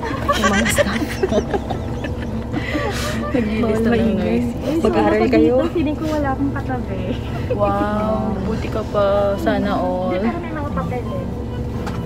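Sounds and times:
bus engine rumble: 0.0 - 12.0
woman's voice: 0.3 - 1.4, 3.2 - 11.2.

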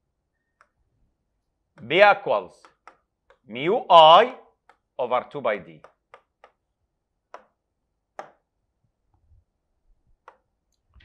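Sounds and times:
stylus tapping touchscreen: 0.4 - 0.9, 1.7 - 3.6, 4.6 - 5.1, 5.7 - 8.6, 10.1 - 11.0.

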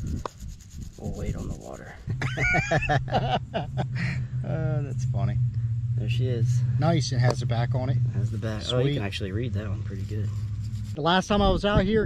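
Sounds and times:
low hum: 0.0 - 12.0
men talking: 1.0 - 5.4, 6.0 - 10.4, 11.0 - 12.0
men laughing: 2.0 - 4.4.

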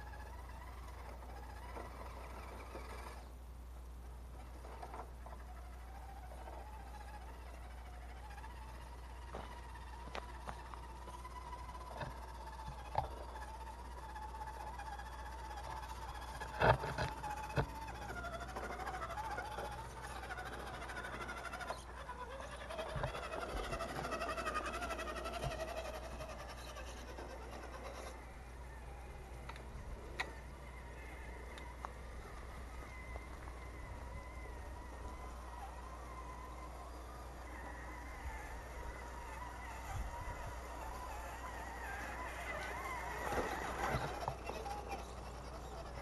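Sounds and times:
electric motor whining: 0.0 - 3.4, 4.3 - 46.0.

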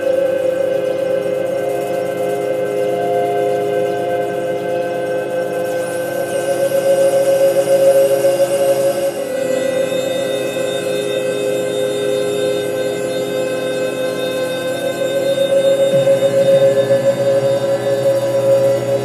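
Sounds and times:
sustained synthesizer drone: 0.0 - 19.0.

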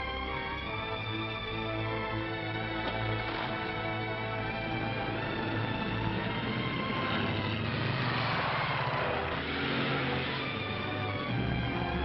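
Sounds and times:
orchestral film music: 0.0 - 12.0
road noise: 0.5 - 12.0
car engine: 2.0 - 12.0.

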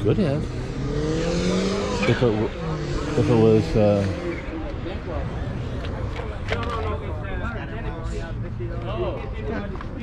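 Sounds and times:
people talking: 0.0 - 0.5, 1.3 - 10.0.

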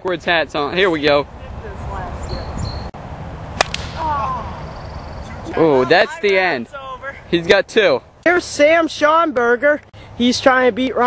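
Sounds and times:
background noise: 0.0 - 11.0
plastic bat hitting ball: 3.6 - 4.0.

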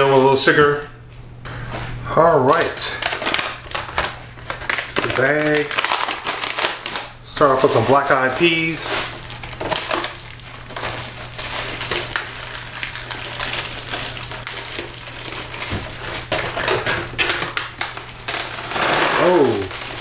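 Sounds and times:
plastic bag crinkling: 2.5 - 20.0.

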